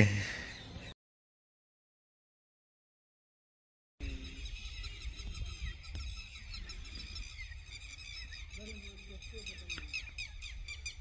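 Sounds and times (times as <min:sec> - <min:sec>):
birds chirping and twittering: 0:00.0 - 0:01.0, 0:04.0 - 0:11.0
lower bird call: 0:00.0 - 0:01.0, 0:04.0 - 0:11.0.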